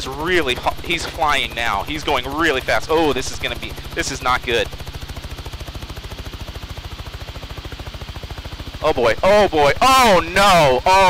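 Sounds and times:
helicopter rotor pulsing: 0.0 - 11.0.

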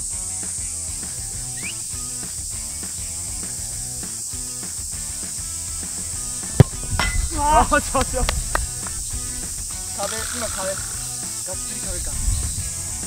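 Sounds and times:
background music: 0.0 - 13.0
steady high hiss: 0.0 - 13.0
football being kicked: 6.4 - 8.7.

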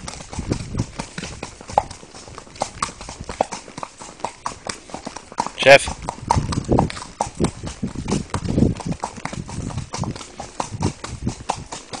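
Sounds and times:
hooves clip-clopping on pavement: 0.0 - 12.0.

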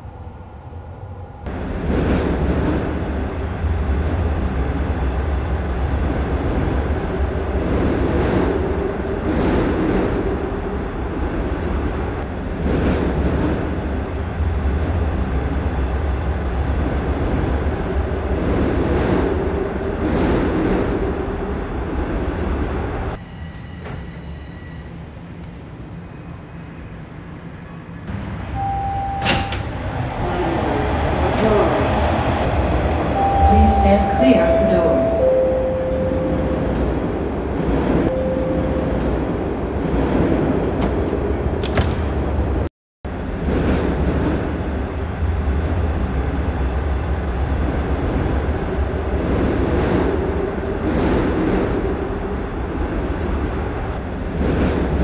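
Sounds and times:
subway train rumbling: 0.0 - 55.0.

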